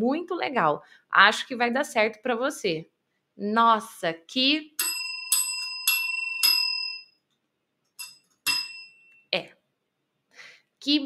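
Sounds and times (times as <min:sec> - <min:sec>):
service bell dinging: 0:04.8 - 0:07.1, 0:08.0 - 0:09.2.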